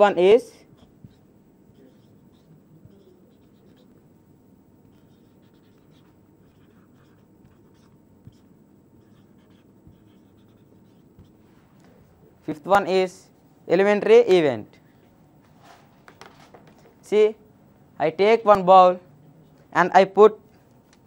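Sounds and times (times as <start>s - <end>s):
marker squeaking on whiteboard: 0.7s - 4.1s, 4.8s - 12.2s.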